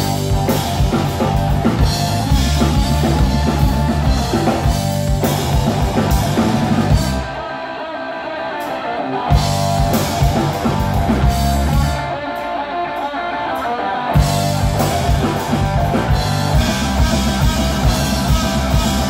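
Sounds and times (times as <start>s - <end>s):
bass guitar: 0.0s - 19.0s
drums: 0.0s - 19.0s
electric guitar: 0.0s - 19.0s.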